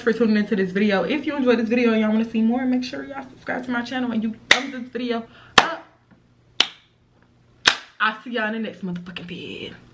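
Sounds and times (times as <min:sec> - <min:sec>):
hand claps: 0:06.6 - 0:06.9, 0:07.6 - 0:08.0.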